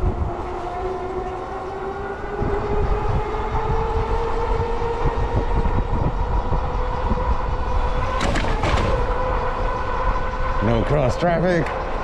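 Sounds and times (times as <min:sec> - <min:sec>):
electric motor whine: 0:00.0 - 0:12.0
wind rumble on microphone: 0:00.0 - 0:12.0.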